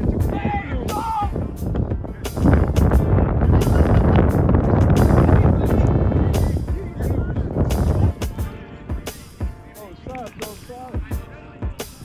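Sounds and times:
faint music: 0.0s - 12.0s
wind buffeting microphone: 0.0s - 12.0s.

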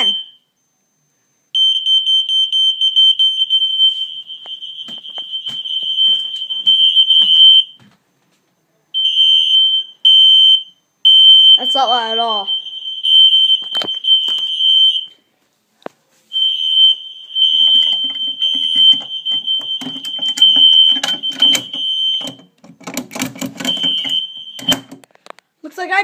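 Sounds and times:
fire alarm high-pitched tone: 0.0s - 7.9s, 8.9s - 15.2s, 16.3s - 22.6s, 23.4s - 25.0s
clicks and knocks of handling: 17.8s - 25.5s.

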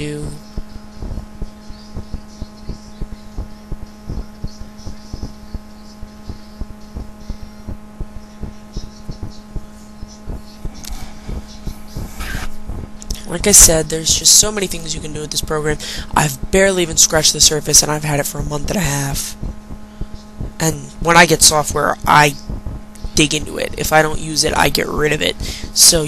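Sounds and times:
steady low hum: 0.0s - 26.0s
irregular clicks and thumps: 6.3s - 13.1s.

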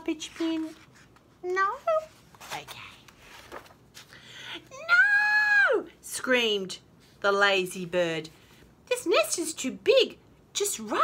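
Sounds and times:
paper rustling: 0.0s - 4.2s.

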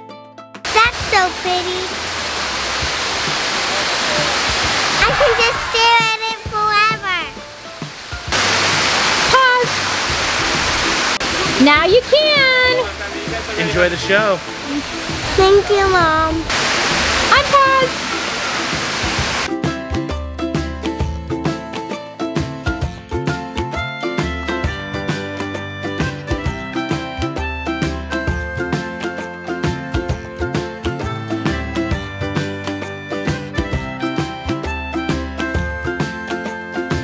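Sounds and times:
waterfall splashing into pond: 0.7s - 19.5s
plucked string music: 4.4s - 37.0s.

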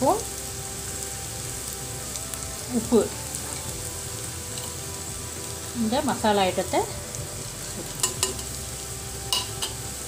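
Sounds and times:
onions frying in oil: 0.0s - 10.0s.

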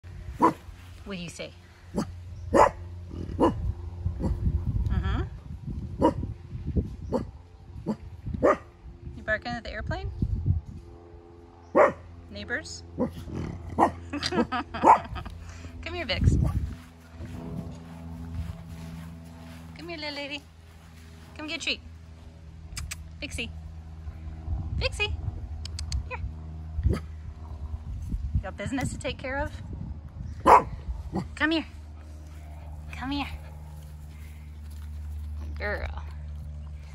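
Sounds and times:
low muffled rumble: 0.0s - 11.0s, 11.7s - 36.9s
dog barking: 0.4s - 0.6s, 2.0s - 2.8s, 3.4s - 3.6s, 7.9s - 8.7s, 11.8s - 12.0s, 13.8s - 14.0s, 30.4s - 30.7s.

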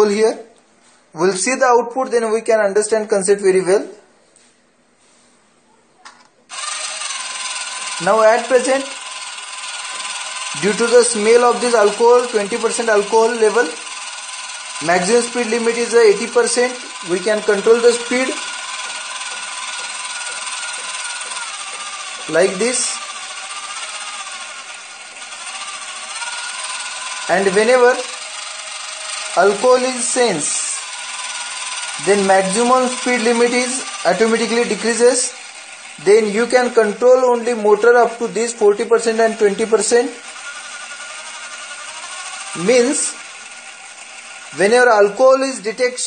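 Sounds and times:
small gear motors whirring: 6.5s - 46.0s.

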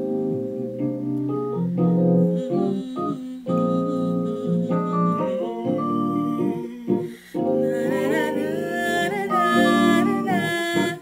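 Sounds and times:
gospel singing in held notes: 1.8s - 11.0s.

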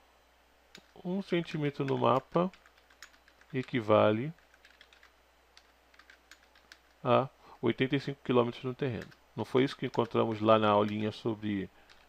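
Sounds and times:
faint keyboard typing: 0.7s - 7.1s, 8.7s - 12.0s.

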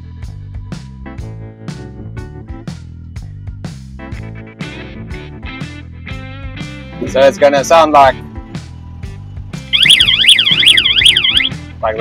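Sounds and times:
electronic warning siren warbling: 9.7s - 11.6s.

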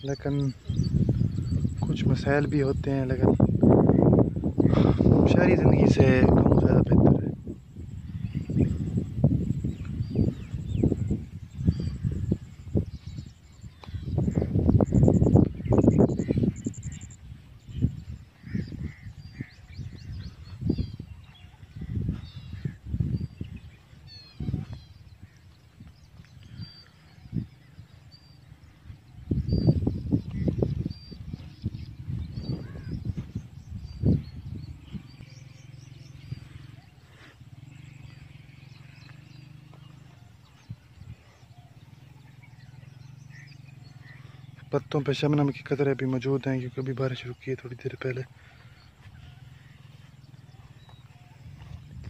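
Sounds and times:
birds chirping: 0.0s - 52.0s
steady low hum: 0.0s - 52.0s
low thumps and rumbles: 3.2s - 27.6s.

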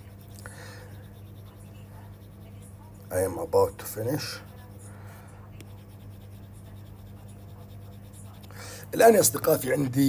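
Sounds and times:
low electrical hum: 0.0s - 10.0s.

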